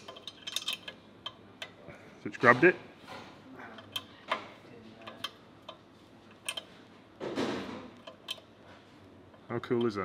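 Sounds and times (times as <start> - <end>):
ratcheting spanner clicking: 0.0 - 1.8, 5.0 - 6.7, 8.0 - 8.5.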